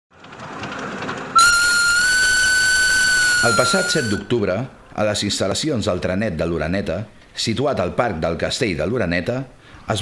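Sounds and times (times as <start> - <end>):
miniature train rumbling and clicking: 0.1 - 4.2
train whistle: 1.4 - 4.3.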